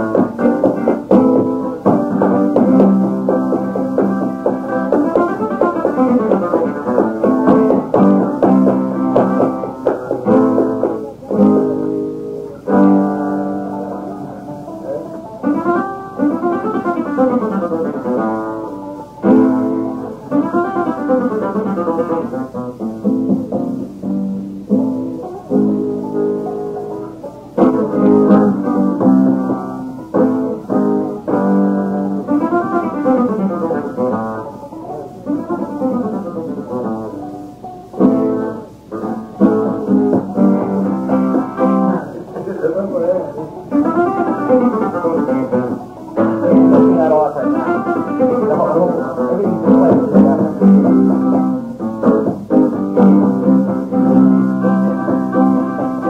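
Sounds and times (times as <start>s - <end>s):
flamenco guitar playing: 0.0s - 56.0s.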